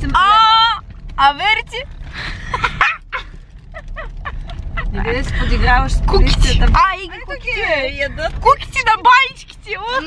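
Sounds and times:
car interior rumble: 0:00.0 - 0:10.0
young woman laughing: 0:02.4 - 0:05.0.

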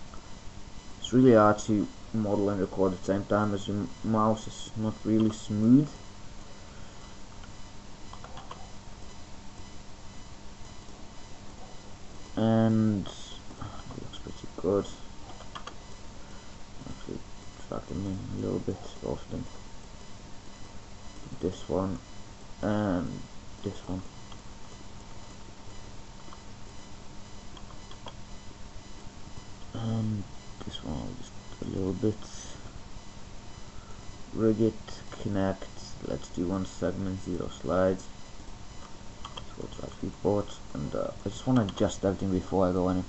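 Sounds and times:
faint electrical hum: 0:00.0 - 0:43.0
microphone hiss: 0:00.0 - 0:43.0
faint clicks: 0:15.3 - 0:15.8, 0:27.5 - 0:28.2, 0:38.8 - 0:39.6.

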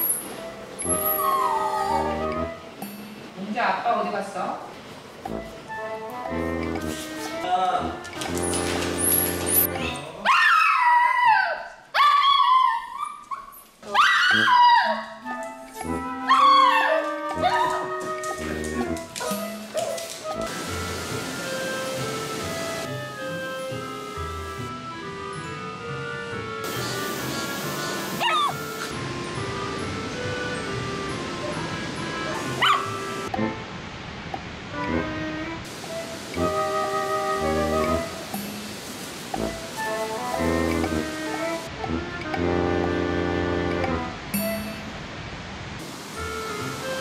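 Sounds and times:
background music: 0:00.0 - 0:10.3, 0:14.0 - 0:33.7, 0:34.7 - 0:45.0, 0:45.8 - 0:47.0
dog whining: 0:00.8 - 0:02.5, 0:10.3 - 0:15.5, 0:16.2 - 0:18.4, 0:28.2 - 0:28.8, 0:32.3 - 0:33.0.

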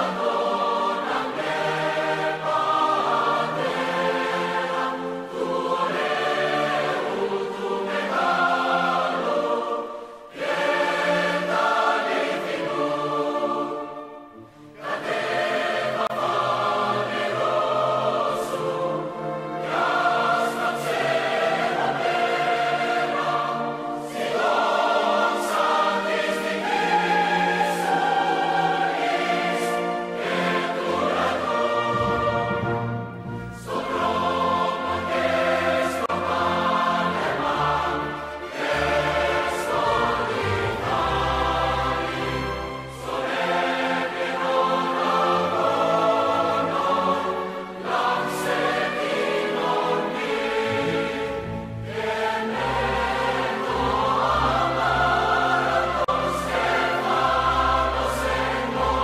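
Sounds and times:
choir singing sustained chords: 0:00.0 - 0:59.0.

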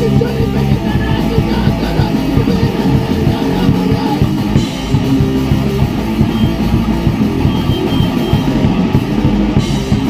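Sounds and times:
drum and cymbal hits: 0:00.0 - 0:10.0
electric guitars: 0:00.0 - 0:10.0.

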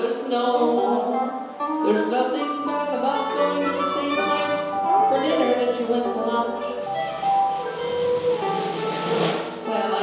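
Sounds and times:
live rock band: 0:00.0 - 0:10.0.

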